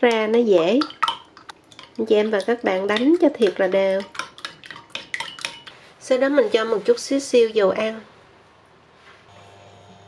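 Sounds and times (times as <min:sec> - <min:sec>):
spoon beating eggs in bowl: 0:00.0 - 0:07.8.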